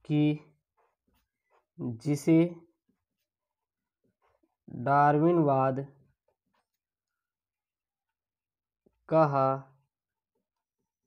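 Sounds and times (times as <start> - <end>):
man speaking: 0.0 - 0.6
marker pen scratching on paper: 0.6 - 1.7, 6.1 - 7.0.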